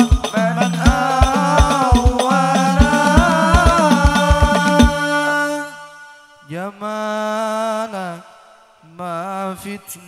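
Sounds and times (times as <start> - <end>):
frame drums: 0.0 - 5.2
man singing unaccompanied: 0.0 - 10.0.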